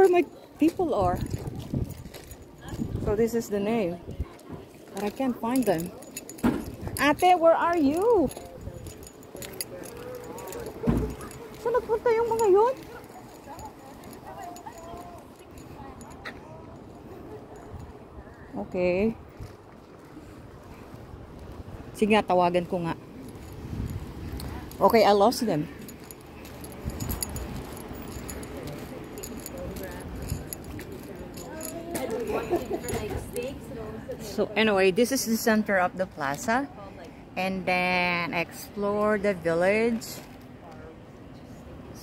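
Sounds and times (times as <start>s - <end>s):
light metallic jingling: 0.0s - 19.6s, 20.2s - 36.7s
faint voices: 0.0s - 21.3s, 22.7s - 35.1s.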